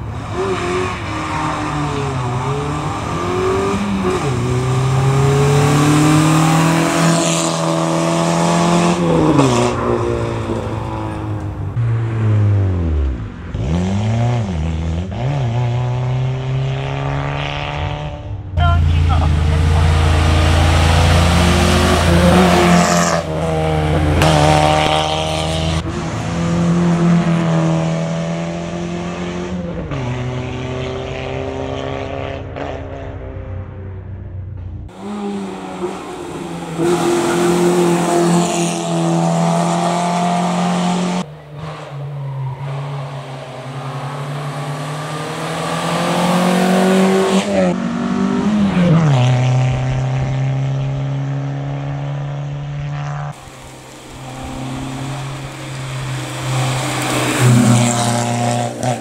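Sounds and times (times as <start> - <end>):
car engine revving hard: 0.0 - 11.4, 13.0 - 32.8, 34.9 - 42.0, 42.6 - 59.0.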